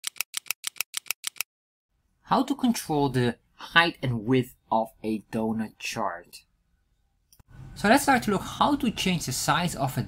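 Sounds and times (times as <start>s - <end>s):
sharp clicks in pairs: 0.0s - 1.5s.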